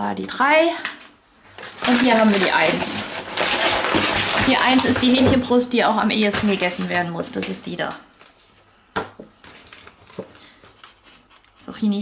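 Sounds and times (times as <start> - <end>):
paper bag crinkling: 1.0 - 5.5, 6.1 - 8.6, 9.4 - 11.4.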